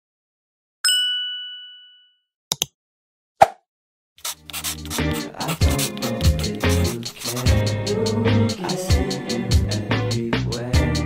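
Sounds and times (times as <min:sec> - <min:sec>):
bright bell ding: 0:00.8 - 0:02.2.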